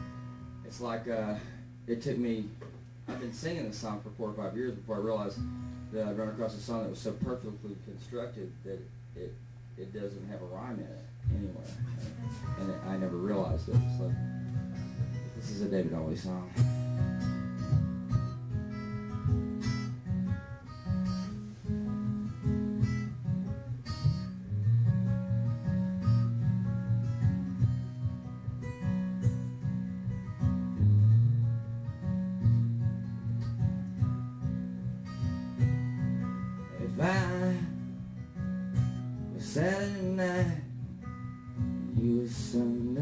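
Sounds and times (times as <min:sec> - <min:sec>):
fingerpicked acoustic guitar: 0:00.0 - 0:43.0
man singing: 0:36.7 - 0:37.8, 0:39.3 - 0:40.7, 0:41.9 - 0:43.0.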